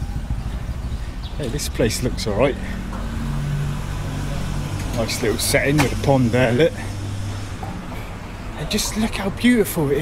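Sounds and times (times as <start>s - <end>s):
vehicle engine running: 0.0s - 8.5s.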